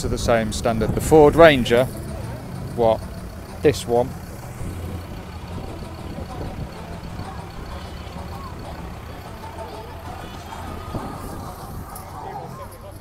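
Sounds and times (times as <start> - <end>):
wind buffeting microphone: 0.0 - 1.8, 4.2 - 12.6
background music: 0.0 - 13.0
faint background voices: 0.0 - 13.0.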